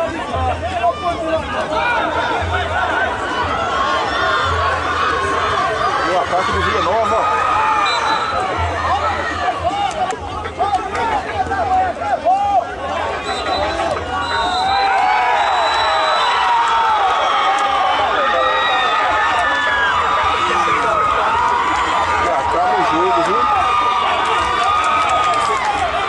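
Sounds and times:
crowd shouting and cheering: 0:00.0 - 0:26.0.

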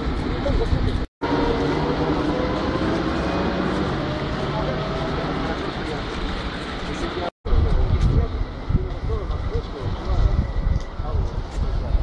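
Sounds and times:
people talking: 0:00.0 - 0:12.0
rumble of traffic: 0:00.0 - 0:12.0.

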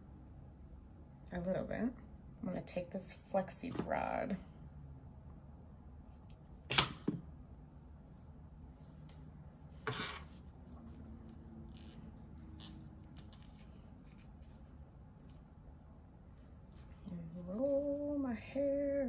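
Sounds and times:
hair and foam rod handling: 0:08.7 - 0:15.5.

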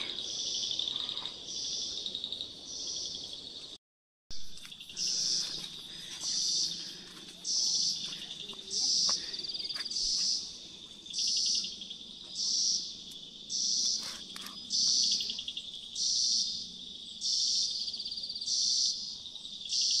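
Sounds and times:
insect pulsing trill: 0:04.4 - 0:08.1, 0:08.7 - 0:20.0
insect high buzz: 0:04.5 - 0:20.0.

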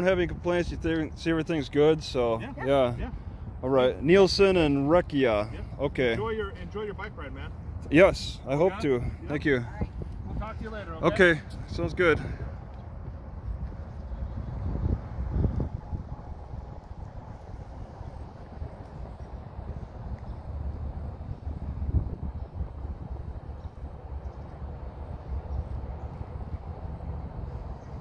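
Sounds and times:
wind rumbling on microphone: 0:00.0 - 0:28.0.

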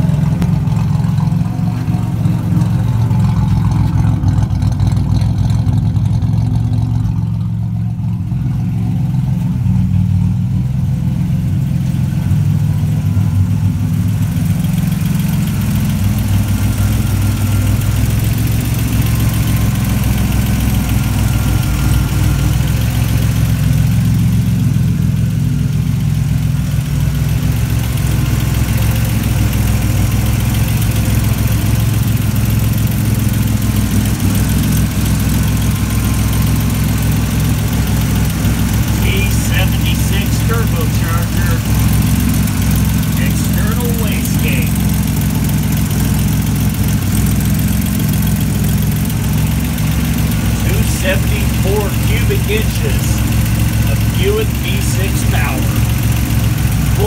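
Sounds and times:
car engine idling: 0:00.0 - 0:57.0.

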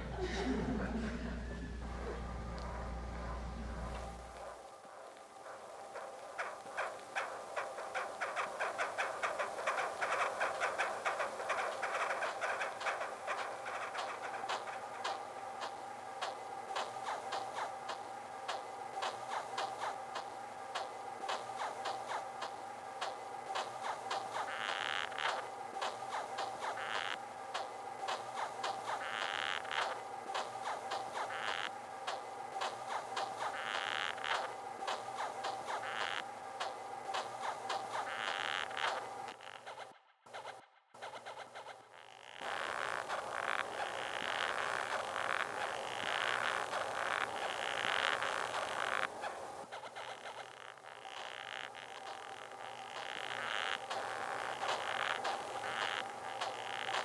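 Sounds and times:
scratchy bursts: 0:01.9 - 0:57.0
dense clicking beetle sounds: 0:04.0 - 0:57.0.

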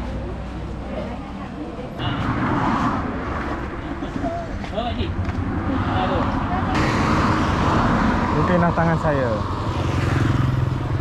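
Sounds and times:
cars passing: 0:00.0 - 0:11.0.

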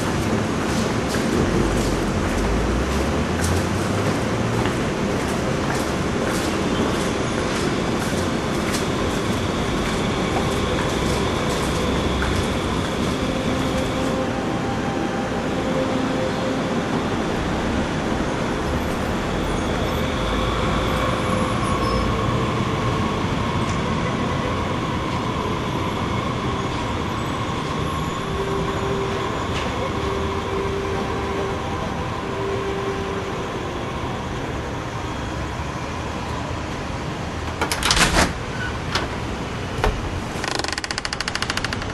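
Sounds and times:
traffic rumble: 0:00.0 - 0:41.9.

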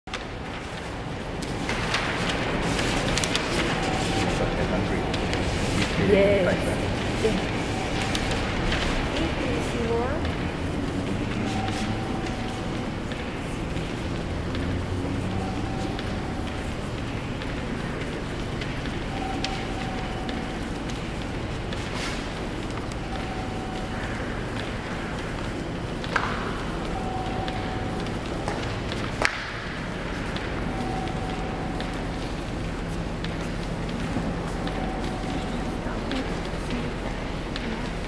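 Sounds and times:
steady low hum: 0:00.1 - 0:38.0
indistinct voices: 0:01.9 - 0:21.0, 0:30.3 - 0:38.0.

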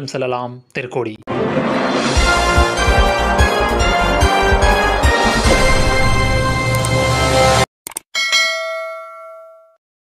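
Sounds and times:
notification bell ding: 0:08.2 - 0:09.8.

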